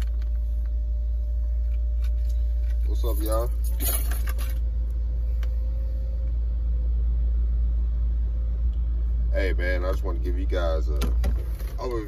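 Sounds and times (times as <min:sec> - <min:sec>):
sunroof shade motor hum: 0:00.0 - 0:12.0.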